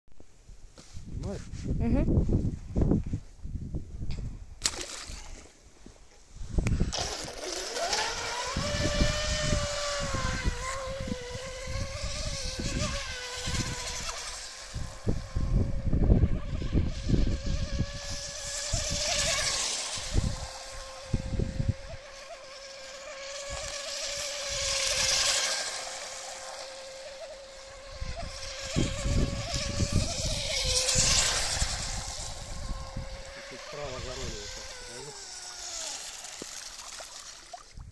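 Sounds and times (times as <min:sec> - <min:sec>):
electric motor whine: 0:06.5 - 0:37.9.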